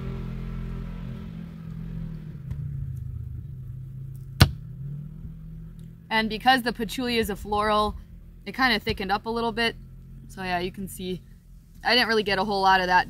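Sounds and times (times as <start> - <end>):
off-road vehicle engine drone: 0.0 - 13.0.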